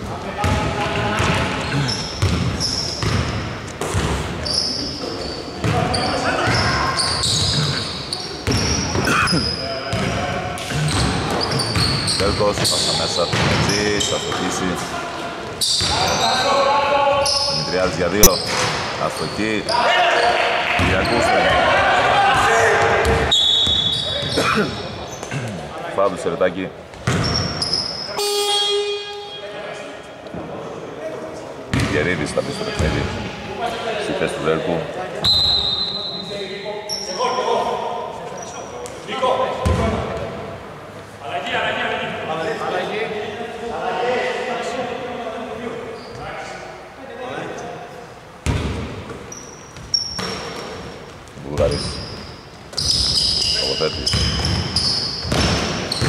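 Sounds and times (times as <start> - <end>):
voices calling out: 4.4 - 25.8.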